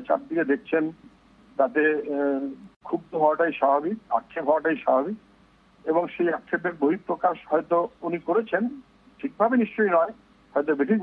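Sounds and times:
person talking: 0.0s - 5.2s, 5.9s - 11.0s.

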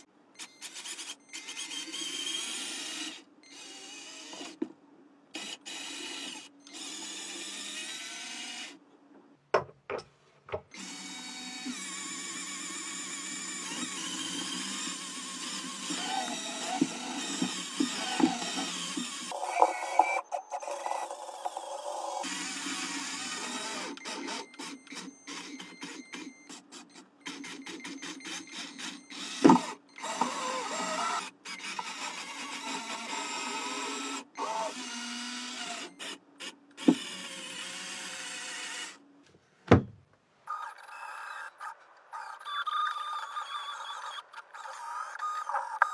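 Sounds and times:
toy robot motors whirring: 0.4s - 4.6s, 5.3s - 8.8s, 10.8s - 39.0s, 40.5s - 45.9s.

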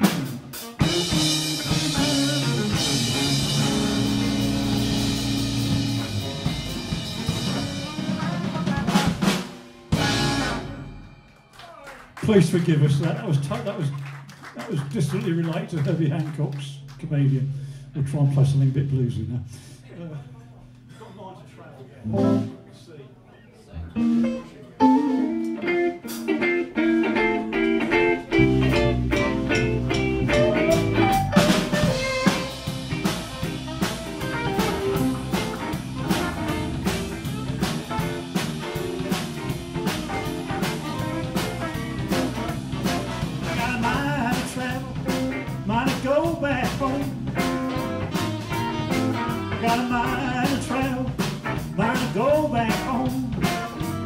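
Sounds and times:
saxophone: 0.0s - 9.2s, 24.0s - 43.8s, 47.1s - 50.4s
bass guitar: 0.0s - 11.4s, 22.0s - 22.7s, 23.7s - 54.0s
electric guitar riff: 0.0s - 11.5s, 22.0s - 22.7s, 23.8s - 45.9s, 46.5s - 52.0s
drum kit: 0.0s - 13.8s, 22.1s - 22.6s, 23.8s - 54.0s.

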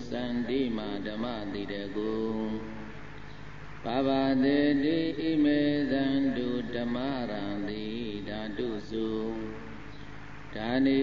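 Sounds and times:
person chanting in long held notes: 0.0s - 3.0s, 3.8s - 9.8s, 10.5s - 11.0s.

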